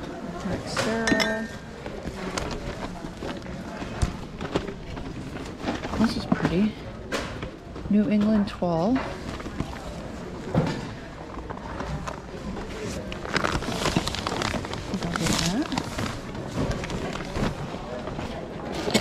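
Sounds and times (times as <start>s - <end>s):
murmur of voices: 0.0s - 19.0s
plastic bags crinkling: 0.5s - 6.8s, 11.3s - 19.0s
rustling cloth bag: 11.2s - 18.6s.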